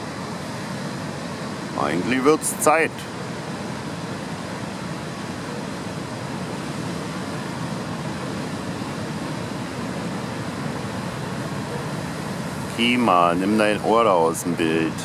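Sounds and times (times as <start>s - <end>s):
heavy surf breaking on rocks: 0.0s - 15.0s.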